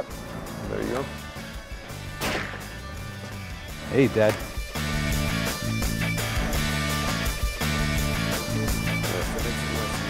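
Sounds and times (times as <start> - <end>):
background music: 0.0 - 10.0
rifle shot with echo: 2.2 - 2.6.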